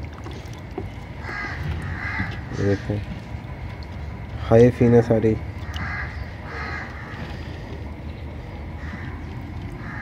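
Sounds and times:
low steady rumble: 0.0s - 10.0s
bird cawing: 1.2s - 2.9s, 4.8s - 7.8s, 8.8s - 10.0s.

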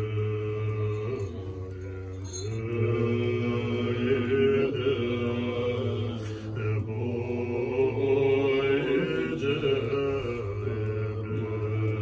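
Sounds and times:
monks chanting in low voices: 0.0s - 12.0s.

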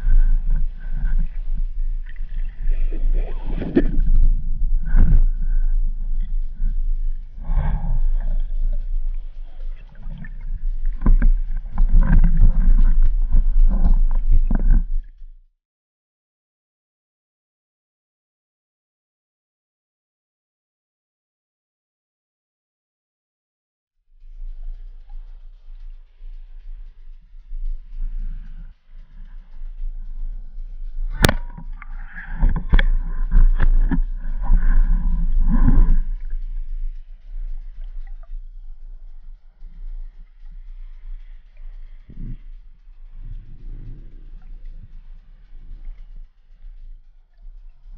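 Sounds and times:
underwater rumble and sloshing: 0.0s - 15.4s, 24.2s - 47.9s
knocking and scraping on shaft: 0.1s - 15.0s, 27.7s - 46.6s.

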